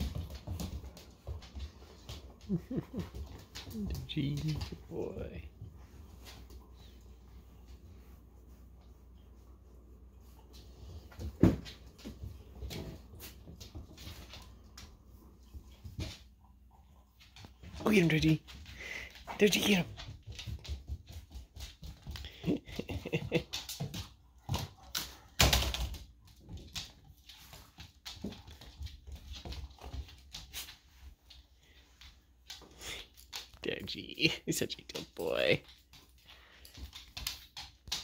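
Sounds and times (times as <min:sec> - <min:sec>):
dog claws clicking on wood floor: 0:17.2 - 0:33.9, 0:34.7 - 0:38.0.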